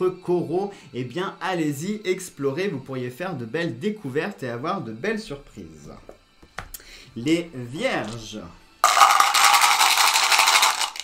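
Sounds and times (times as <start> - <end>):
dice rattling in a cup: 8.8 - 11.0.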